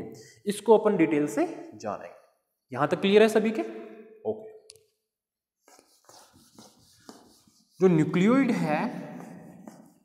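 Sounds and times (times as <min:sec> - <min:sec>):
whiteboard being wiped: 0:05.6 - 0:10.0
man speaking: 0:07.8 - 0:09.2.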